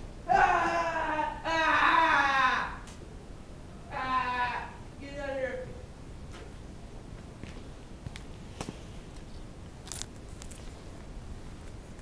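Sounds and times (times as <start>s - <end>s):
person giving wordless cries: 0.2s - 2.9s, 3.9s - 5.7s.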